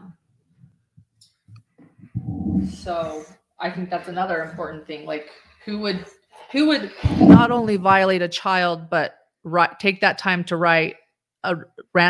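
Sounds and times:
person speaking: 2.2s - 6.0s, 6.9s - 8.3s.

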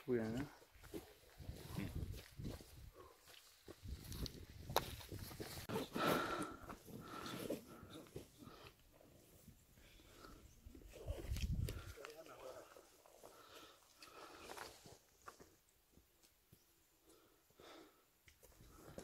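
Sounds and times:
footsteps on trail: 0.1s - 16.4s, 18.3s - 19.0s
wind buffeting microphone: 1.4s - 2.9s, 11.0s - 11.9s
heavy breathing: 5.7s - 10.5s, 13.1s - 14.8s.

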